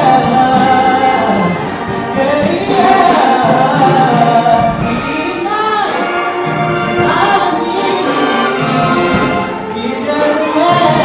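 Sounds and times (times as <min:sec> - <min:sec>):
man singing into a microphone: 0:00.0 - 0:06.2, 0:09.2 - 0:11.0
choir voices: 0:00.0 - 0:11.0
gospel instruments: 0:00.0 - 0:11.0.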